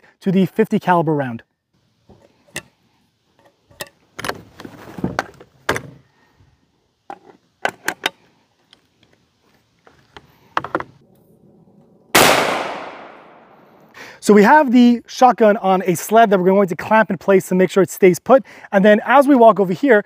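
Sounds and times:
loud shotgun shot: 0:12.2 - 0:13.6.

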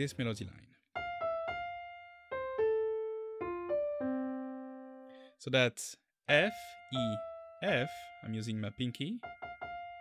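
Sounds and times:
slow piano melody: 0:01.0 - 0:05.3, 0:06.4 - 0:10.0.

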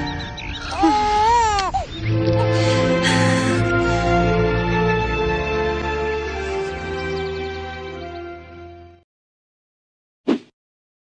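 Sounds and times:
background music: 0:00.0 - 0:09.0
newborn baby crying: 0:00.6 - 0:03.8.

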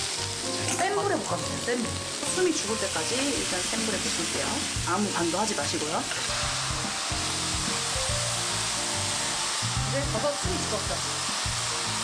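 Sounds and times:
background music: 0:00.0 - 0:12.0
vegetables sizzling in a pan: 0:00.0 - 0:12.0.

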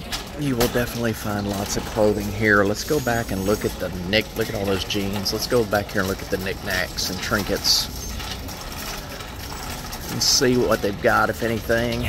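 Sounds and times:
mechanical rattle: 0:00.0 - 0:12.0.

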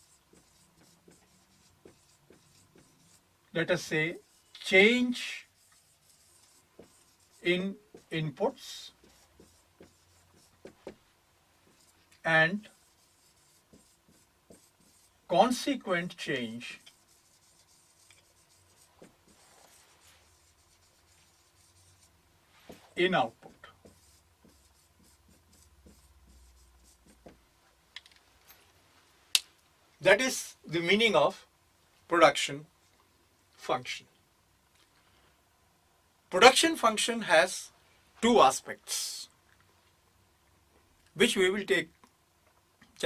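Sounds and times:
marker pen on whiteboard: 0:00.0 - 0:28.5.

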